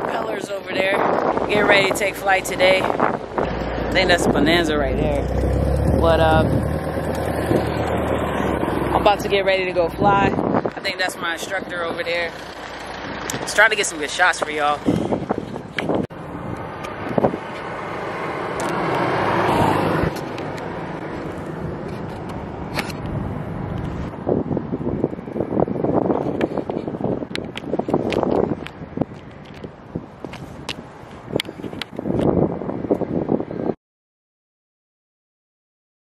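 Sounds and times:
wind buffeting microphone: 0.0 - 33.8.

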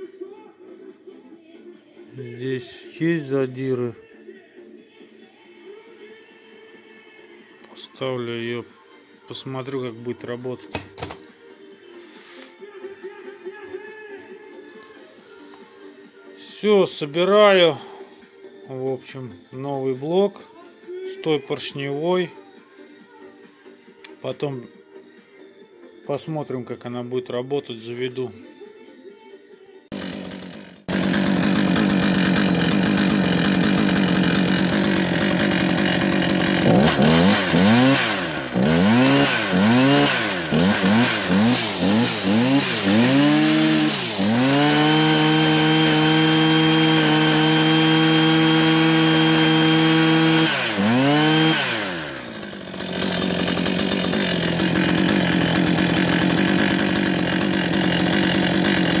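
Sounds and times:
brushcutter engine revving: 29.9 - 59.0.

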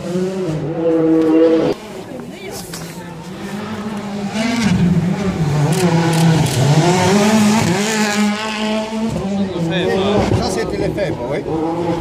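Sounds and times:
rally car engine revving: 0.0 - 2.1, 3.1 - 12.0.

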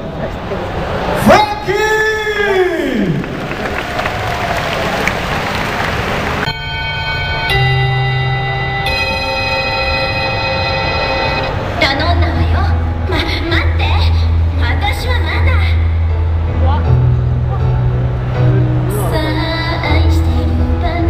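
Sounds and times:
crowd noise in a large hall: 0.0 - 21.0
held chords over loudspeakers: 6.4 - 21.0.

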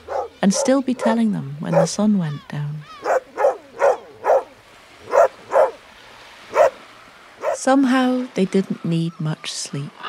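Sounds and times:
dog barking: 0.0 - 2.0, 3.0 - 5.8, 6.5 - 6.8, 7.4 - 7.6.

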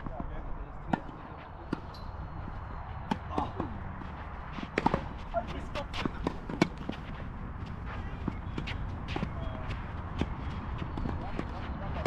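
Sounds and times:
footsteps on court: 2.9 - 12.0
rackets hitting tennis ball: 3.0 - 12.0.

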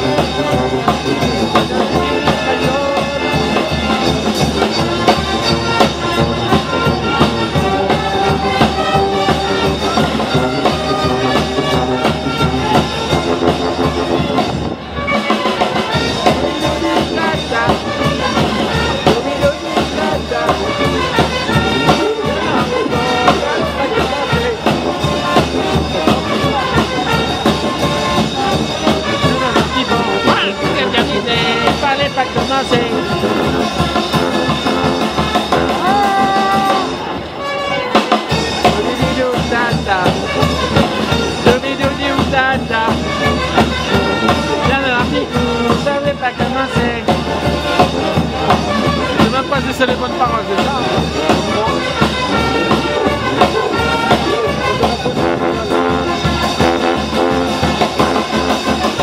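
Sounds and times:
bass drum beat: 0.0 - 14.8, 15.4 - 37.1, 38.3 - 59.0
brass band playing: 0.0 - 59.0.

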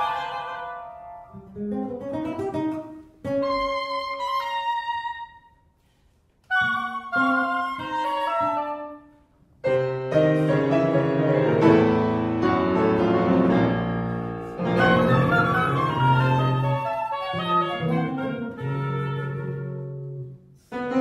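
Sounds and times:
chamber quartet playing: 0.0 - 1.1, 6.5 - 8.9, 14.4 - 20.0.

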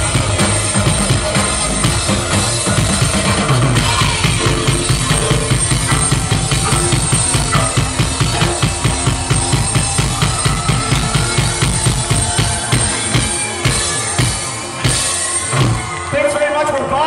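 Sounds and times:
synthesizer keyboards: 0.0 - 15.8
drum kit fast beat: 0.0 - 16.0
live rock band playing: 0.0 - 17.0.

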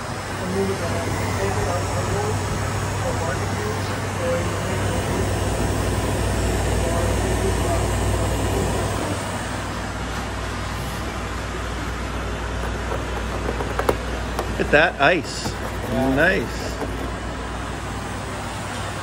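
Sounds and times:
compressor humming: 0.0 - 19.0
condenser fan whirring: 0.0 - 19.0.

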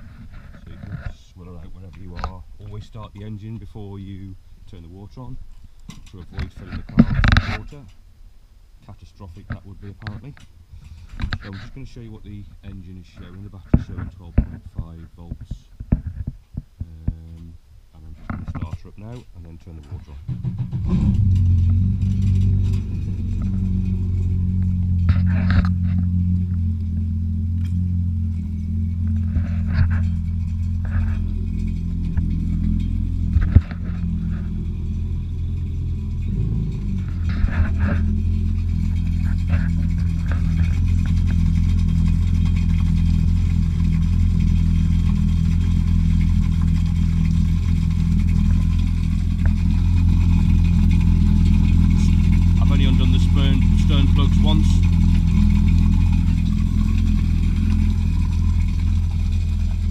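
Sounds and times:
jet ski engine idling: 20.2 - 59.9.

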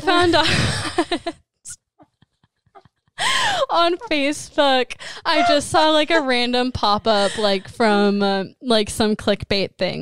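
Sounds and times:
woman panting gasps: 3.2 - 3.7.

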